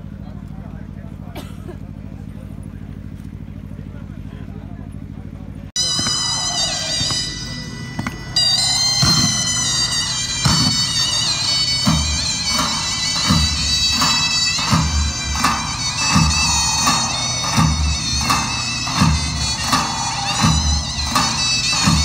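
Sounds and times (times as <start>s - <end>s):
steady low hum: 0.0s - 22.0s
heavy drum beats: 5.8s - 22.0s
reedy wavering pipe melody: 5.8s - 22.0s.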